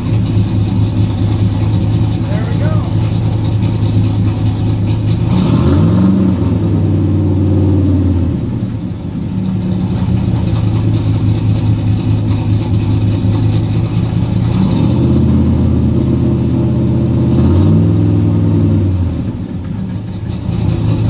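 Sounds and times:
car engine idling and revving: 0.0s - 21.0s.

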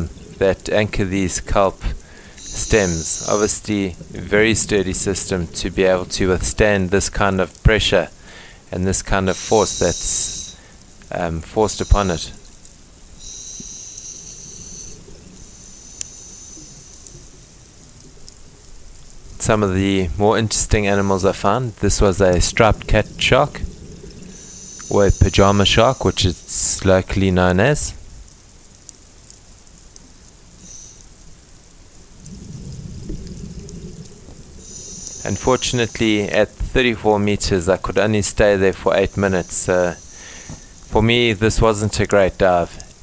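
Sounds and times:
underwater rumble of moving water: 0.0s - 8.2s, 13.7s - 28.4s, 31.8s - 39.8s
thin high hiss: 1.9s - 4.4s, 9.2s - 11.0s, 11.6s - 18.1s, 23.2s - 27.0s, 30.6s - 31.7s, 33.8s - 36.5s, 38.9s - 41.4s
faint clicks: 9.3s - 19.4s, 21.9s - 26.9s, 28.2s - 36.2s, 42.7s - 43.0s
muffled underwater rumble: 32.2s - 36.8s.

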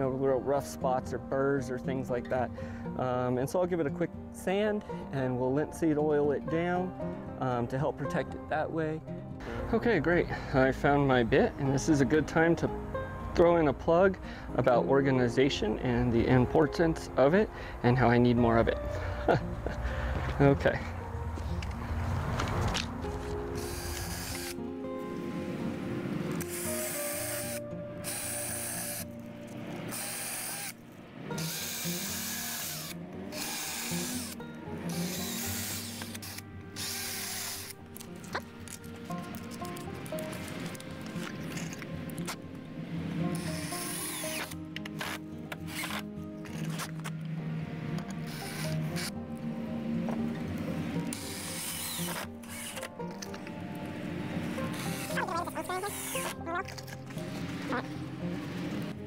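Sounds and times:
cordless drill running in bursts: 23.6s - 24.6s, 26.5s - 29.0s, 29.9s - 30.8s, 31.4s - 37.7s, 43.4s - 44.6s, 48.3s - 48.7s, 51.2s - 52.8s, 55.9s - 56.2s.

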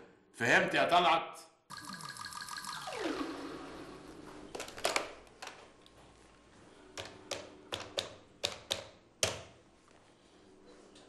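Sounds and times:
telephone buttons clicking: 7.0s - 9.4s.

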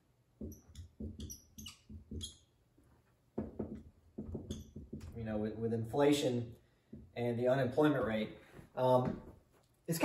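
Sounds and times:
marker squeaking on a whiteboard: 0.4s - 5.2s.

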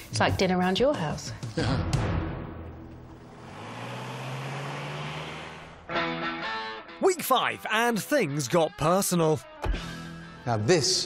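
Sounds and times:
road noise: 2.7s - 6.9s
diesel taxi engine driving off: 2.8s - 6.1s.

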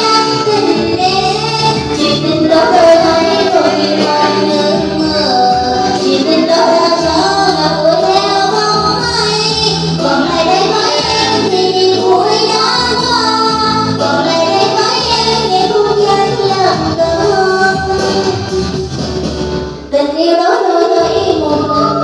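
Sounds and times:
person singing into a microphone: 0.0s - 19.0s, 19.9s - 22.0s
backing music track: 0.0s - 22.0s.

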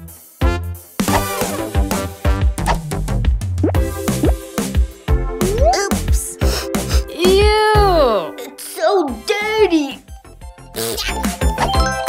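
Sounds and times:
background music: 0.0s - 12.0s
girl's wordless vocal sound: 5.4s - 10.0s.

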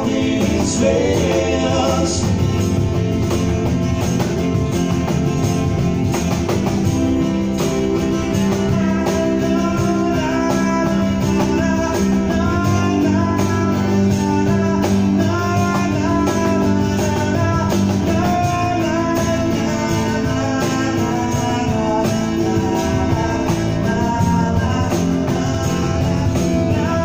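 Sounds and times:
acoustic guitar: 0.0s - 27.0s
electric guitar: 0.0s - 27.0s
steady percussion: 0.0s - 27.0s.

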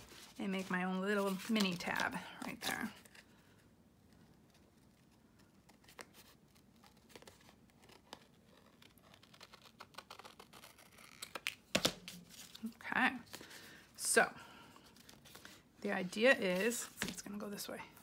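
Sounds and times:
paper rustling: 0.0s - 13.8s.

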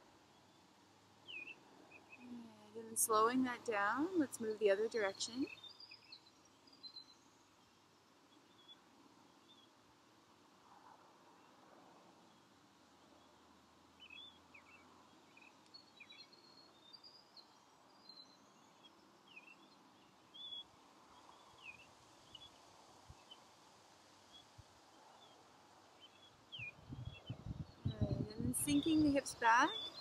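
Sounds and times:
small birds chirping: 26.0s - 30.0s.

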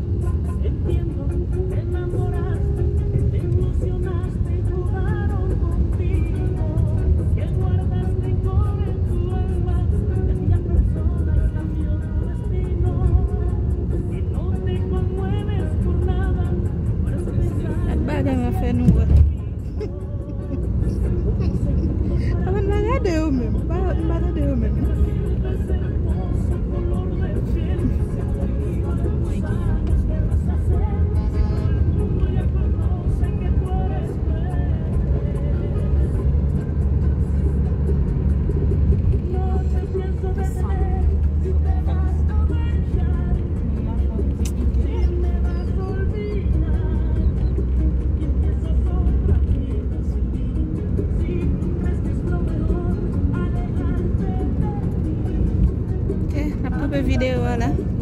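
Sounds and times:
car road and engine rumble: 0.0s - 58.0s
music playing: 0.0s - 58.0s
person speaking: 22.0s - 24.8s.

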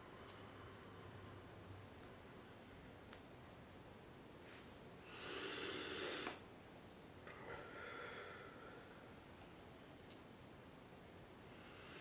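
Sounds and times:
man breathing deeply: 5.0s - 6.4s, 7.3s - 9.2s, 11.5s - 12.0s.

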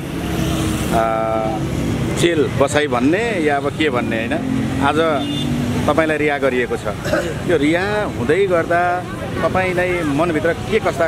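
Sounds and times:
road traffic: 0.0s - 11.0s
vehicle horn: 5.0s - 5.6s.

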